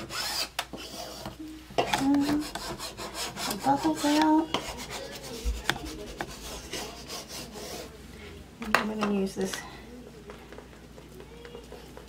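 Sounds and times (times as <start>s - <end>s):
hands rubbing transfer on chalkboard: 2.2s - 7.9s.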